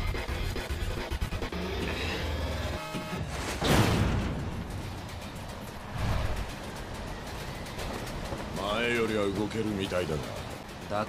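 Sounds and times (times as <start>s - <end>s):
action background music: 0.0s - 11.0s.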